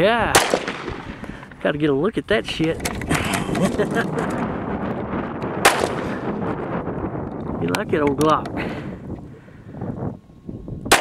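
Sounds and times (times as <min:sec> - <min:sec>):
pistol shot: 0:00.3 - 0:01.2, 0:05.6 - 0:06.1.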